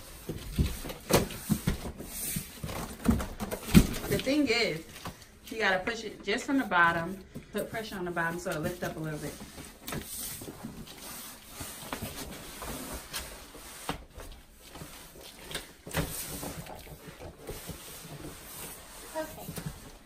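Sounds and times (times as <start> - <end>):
cardboard scraping and rubbing: 16.0 - 20.0.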